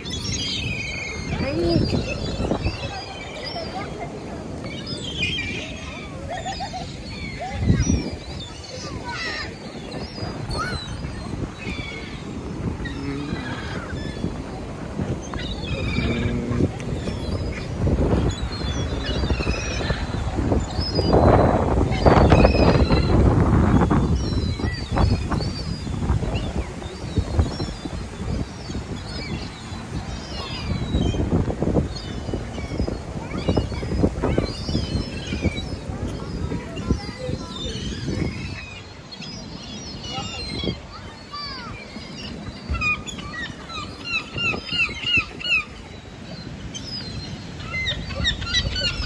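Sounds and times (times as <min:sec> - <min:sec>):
gulls and ducks calling: 0:00.0 - 0:49.0.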